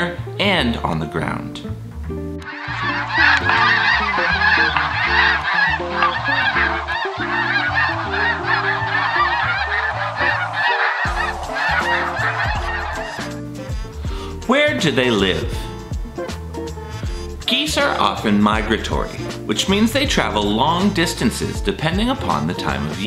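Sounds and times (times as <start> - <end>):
flock of geese honking: 2.4 - 13.8.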